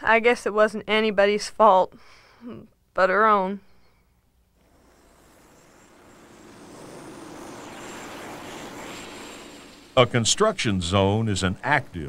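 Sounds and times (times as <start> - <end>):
engine noise: 4.5 - 12.0.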